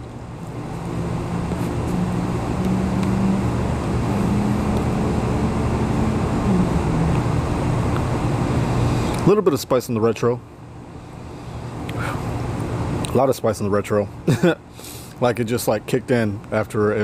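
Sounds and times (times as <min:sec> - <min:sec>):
low motor drone: 0:00.0 - 0:09.4.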